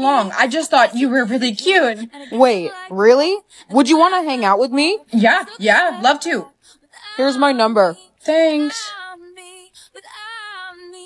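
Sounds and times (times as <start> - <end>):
woman singing long notes: 5.2 - 11.0.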